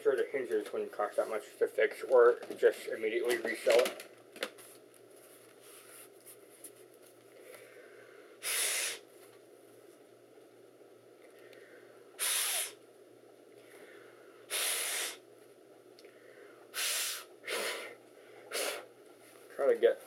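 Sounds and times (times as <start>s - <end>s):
short blasts of air: 8.4s - 9.1s, 12.2s - 12.8s, 14.5s - 15.2s, 16.7s - 18.9s.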